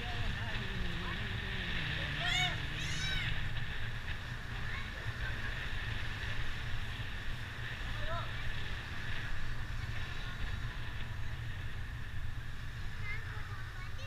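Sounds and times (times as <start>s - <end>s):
motorbike engine rumble: 0.0s - 14.0s
wind buffeting microphone: 0.0s - 14.0s.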